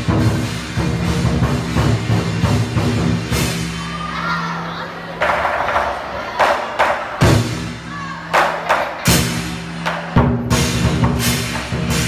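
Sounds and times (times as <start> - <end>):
heavy drum strokes: 0.0 - 4.1, 5.2 - 12.0
cymbals clashing: 0.0 - 4.3, 5.4 - 12.0.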